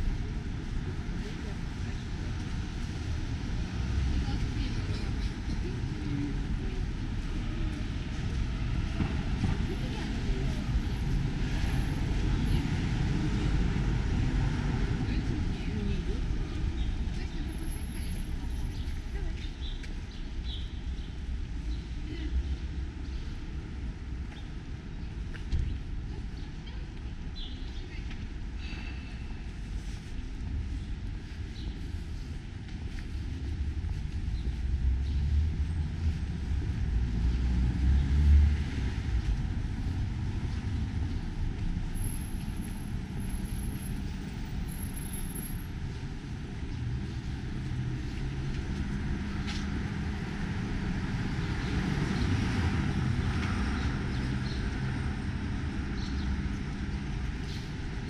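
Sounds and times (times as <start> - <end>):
city street traffic rumble: 0.0 - 58.0
vehicle passing: 34.8 - 41.0.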